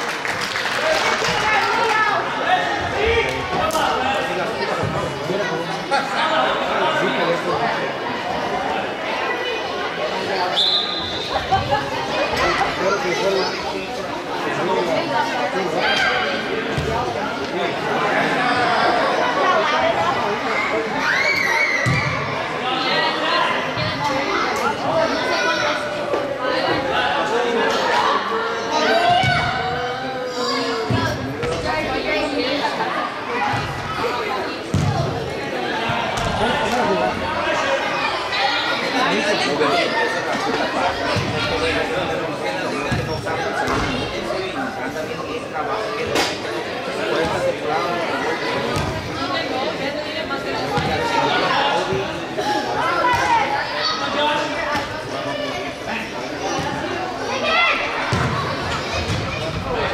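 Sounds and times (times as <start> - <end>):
crowd chattering and calling out: 0.0 - 59.9.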